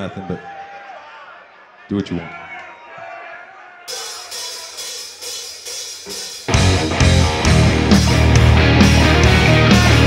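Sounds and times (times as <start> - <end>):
rock band playing loudly: 3.9 - 10.0.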